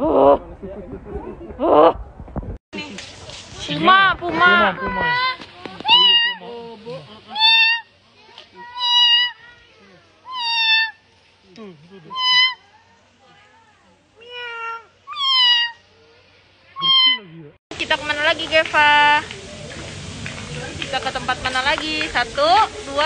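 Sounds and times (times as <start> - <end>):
puma meow-like cries: 10.2 - 11.0, 12.1 - 12.6, 14.2 - 15.8, 16.8 - 17.3.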